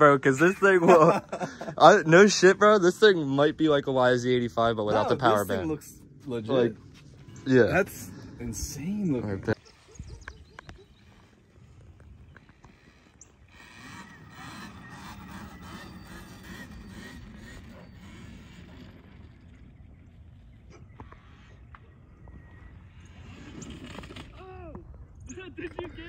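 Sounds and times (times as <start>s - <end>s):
distant electric dirt bike: 0.0s - 26.0s
wind rumble on microphone: 5.9s - 26.0s.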